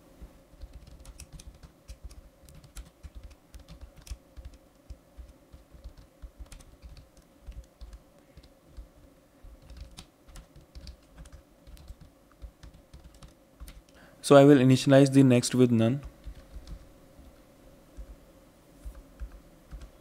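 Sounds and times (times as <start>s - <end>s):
computer keyboard typing: 0.5s - 14.0s, 16.0s - 17.4s, 18.8s - 20.0s.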